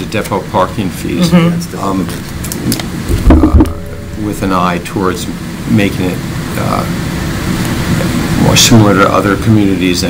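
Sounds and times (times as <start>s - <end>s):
murmur of voice: 1.1s - 1.9s
low rumble thump: 3.1s - 5.4s.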